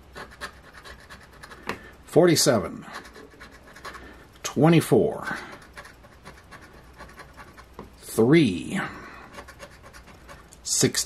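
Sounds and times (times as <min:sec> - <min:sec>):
coin scraping scratch-off ticket: 0:00.0 - 0:01.7, 0:02.9 - 0:04.1, 0:05.3 - 0:07.7, 0:09.3 - 0:10.5.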